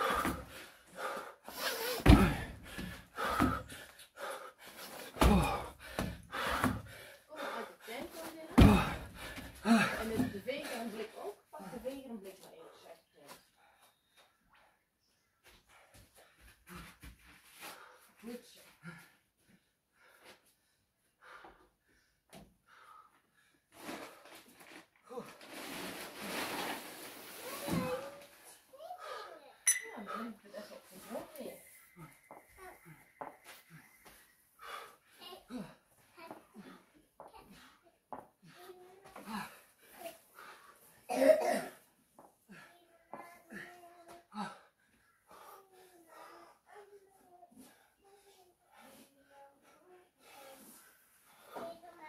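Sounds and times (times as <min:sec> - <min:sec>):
man breathing hard and gasping: 0:00.0 - 0:07.7.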